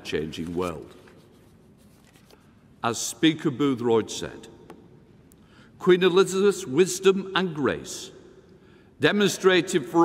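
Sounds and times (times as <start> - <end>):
man speaking: 0.0 - 1.0, 2.8 - 4.6, 5.8 - 8.2, 9.0 - 10.0
soft rustles: 0.4 - 2.6.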